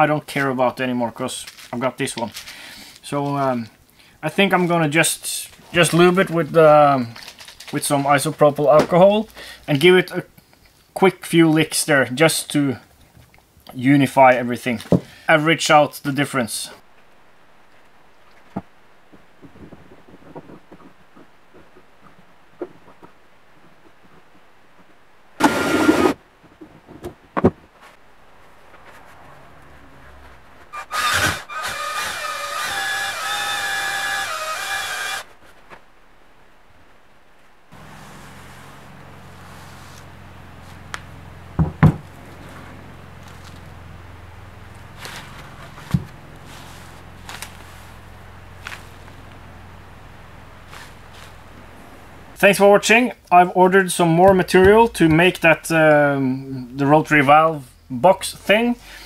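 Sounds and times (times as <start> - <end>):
steady low hum: 16.4 - 59.0
drill-driven cylinder hone whining: 30.8 - 35.3.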